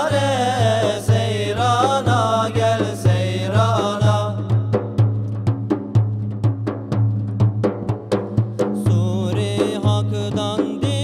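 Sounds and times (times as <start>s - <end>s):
frame drums playing quick rhythm: 0.0s - 11.0s.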